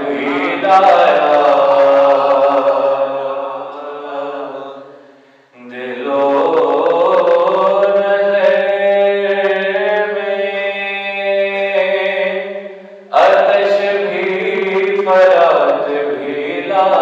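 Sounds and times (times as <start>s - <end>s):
man chanting: 0.0s - 5.0s, 5.6s - 17.0s.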